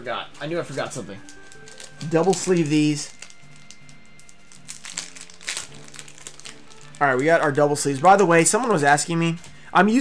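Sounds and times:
quiet background music: 0:00.0 - 0:10.0
plastic sleeves crinkling: 0:00.7 - 0:08.8.

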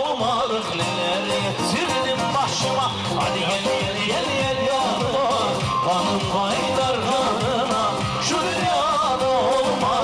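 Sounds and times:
band playing folk dance tune: 0:00.0 - 0:10.0.

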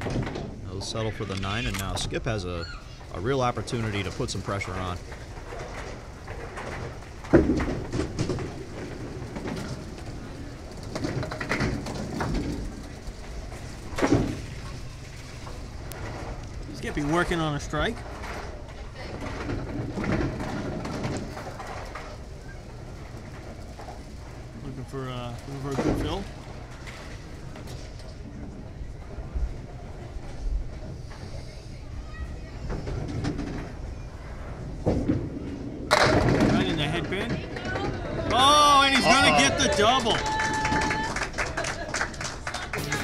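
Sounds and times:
bowling pins crashing down: 0:00.0 - 0:00.7, 0:03.5 - 0:28.0, 0:34.6 - 0:43.0.

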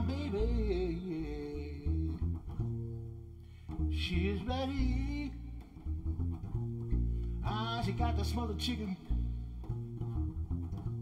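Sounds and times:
double bass plucked pizzicato: 0:00.0 - 0:11.0.

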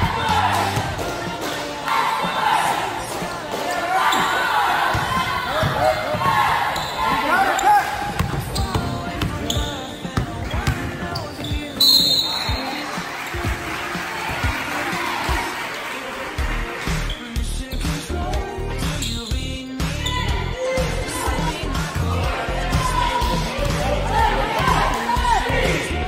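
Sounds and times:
voices in a hall: 0:00.0 - 0:26.0
basketball bouncing on wooden floor: 0:08.0 - 0:11.8.

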